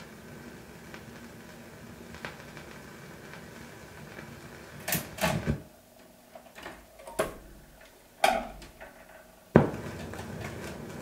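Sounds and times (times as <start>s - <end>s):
record surface hiss: 0.0s - 11.0s.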